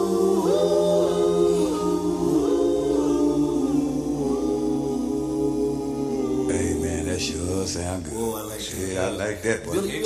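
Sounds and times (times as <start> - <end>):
male vocal group singing a cappella: 0.0 - 10.0.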